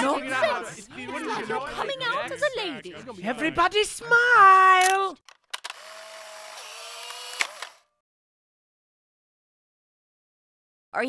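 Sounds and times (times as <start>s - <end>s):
camera clicks: 4.8s - 7.9s
camera motor whirring: 5.6s - 8.0s.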